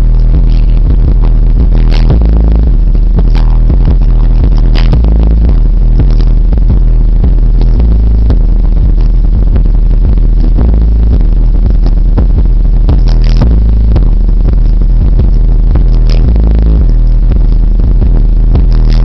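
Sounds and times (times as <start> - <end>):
distorted subwoofer bass: 0.0 - 19.0.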